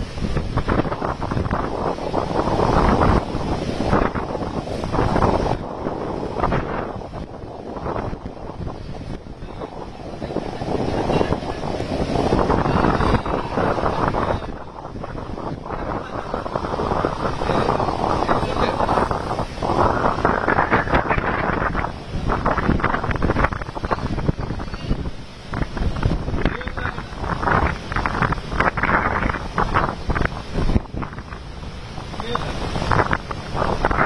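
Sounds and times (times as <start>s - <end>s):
heavy surf breaking on beach: 0.0s - 34.0s
wind buffeting microphone: 0.0s - 34.0s.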